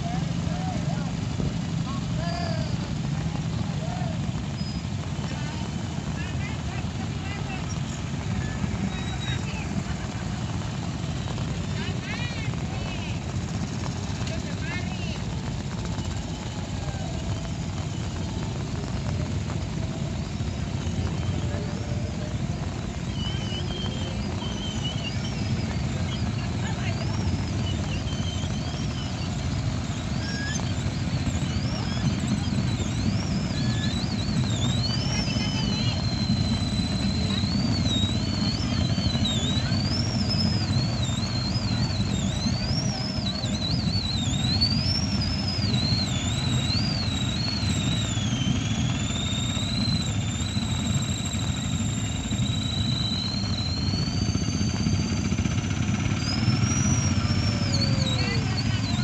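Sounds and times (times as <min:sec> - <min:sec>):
high wavering whistle: 0:13.9 - 0:59.0
motorcycles rumbling past: 0:55.9 - 0:59.0.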